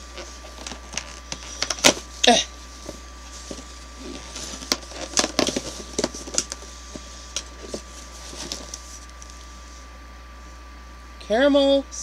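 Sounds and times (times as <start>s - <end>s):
cardboard and paper crinkling: 0.0s - 9.4s.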